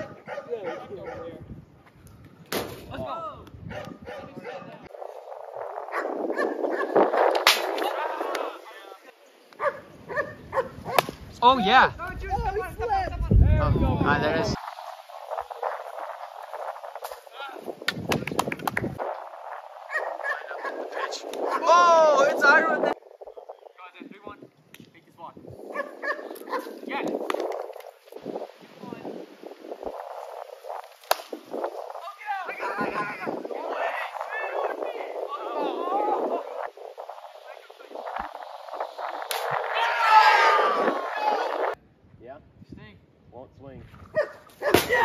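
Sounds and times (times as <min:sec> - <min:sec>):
plastic bat hitting ball: 0:31.0 - 0:31.4.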